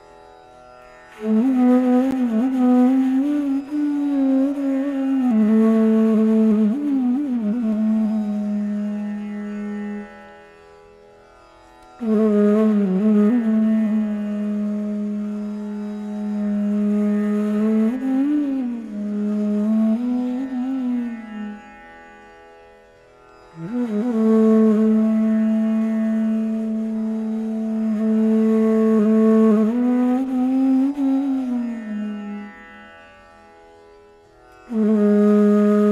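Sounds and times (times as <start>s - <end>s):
bamboo flute melody: 1.2s - 10.1s, 12.0s - 21.6s, 23.6s - 32.8s, 34.6s - 35.9s.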